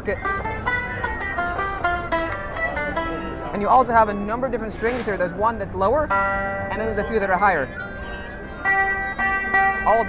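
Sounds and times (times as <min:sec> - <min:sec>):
amplified electric harp notes: 0:00.0 - 0:10.0
keys fretting metal strings: 0:00.0 - 0:10.0.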